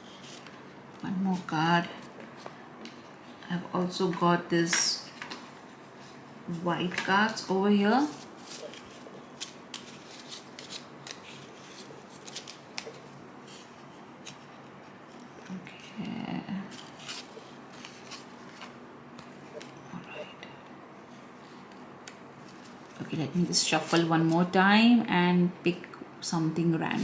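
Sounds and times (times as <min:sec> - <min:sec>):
paper cards being shuffled: 0:08.1 - 0:15.5, 0:16.7 - 0:19.8.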